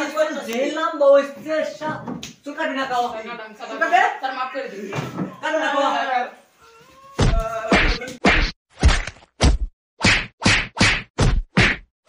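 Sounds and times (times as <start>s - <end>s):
heavy whacks of blows: 7.2s - 11.9s.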